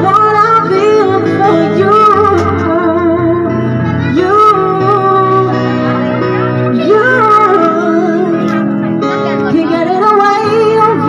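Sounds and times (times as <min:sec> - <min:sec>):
electronic keyboard: 0:00.0 - 0:11.0
person singing with vibrato: 0:00.0 - 0:11.0.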